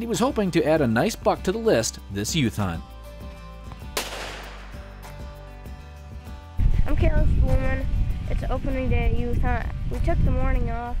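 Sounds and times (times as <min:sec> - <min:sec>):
background music: 0:00.0 - 0:11.0
rifle shot: 0:04.0 - 0:04.9.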